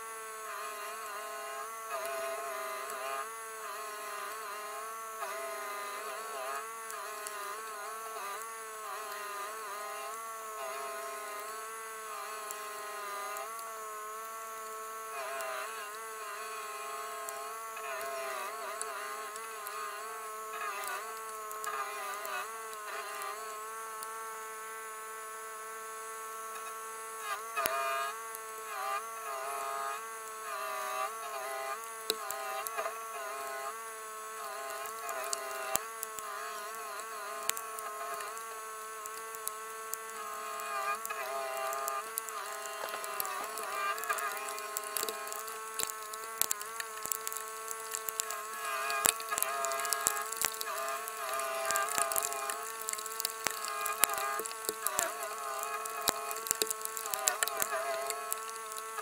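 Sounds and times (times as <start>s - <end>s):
stump grinder grinding: 0.0s - 25.6s, 26.4s - 59.0s.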